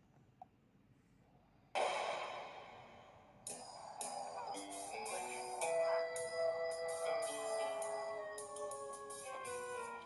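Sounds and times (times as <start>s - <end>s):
cartoon music: 3.5s - 10.0s.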